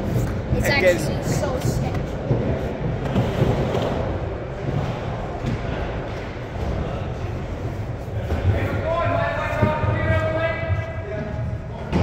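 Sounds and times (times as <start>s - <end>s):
skateboard wheels rolling on wood: 1.7s - 7.2s.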